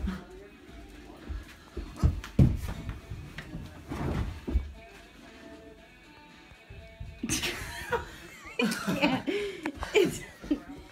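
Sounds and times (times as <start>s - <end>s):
dull thuds on carpet: 1.9s - 4.8s.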